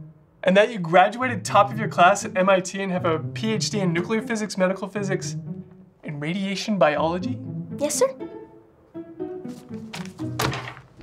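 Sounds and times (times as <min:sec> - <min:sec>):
music with plucked and bowed strings: 0:06.7 - 0:11.0
thuds against a desk: 0:10.0 - 0:10.9.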